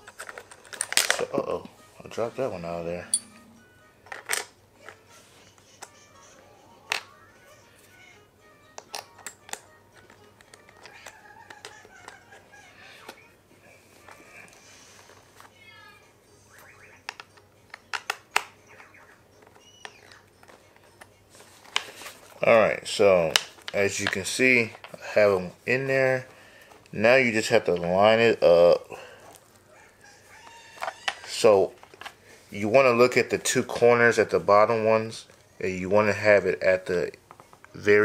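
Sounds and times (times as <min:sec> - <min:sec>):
faint music: 0:00.0 - 0:38.0.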